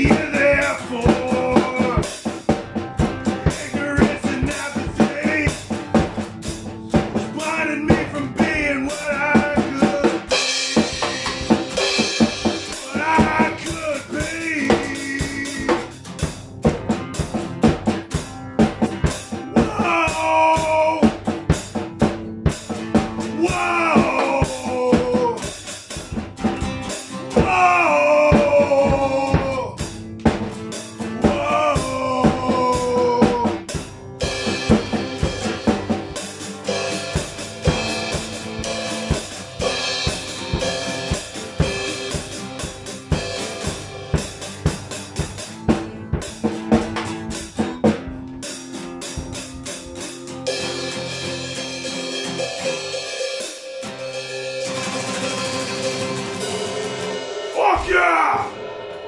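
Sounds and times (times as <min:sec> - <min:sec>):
person singing: 0:00.0 - 0:02.2, 0:03.2 - 0:05.7, 0:07.2 - 0:10.6, 0:12.7 - 0:16.0, 0:19.5 - 0:21.2, 0:23.3 - 0:25.5, 0:27.3 - 0:29.8, 0:31.2 - 0:33.8, 0:57.5 - 0:58.6
acoustic guitar strumming: 0:00.0 - 0:59.0
drum kit beat: 0:00.0 - 0:59.0.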